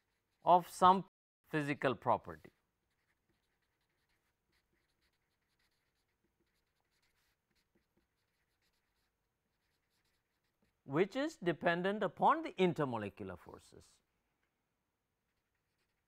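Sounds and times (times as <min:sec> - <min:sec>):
marker pen scratching on paper: 0:00.0 - 0:00.8, 0:02.2 - 0:10.9, 0:14.4 - 0:16.0.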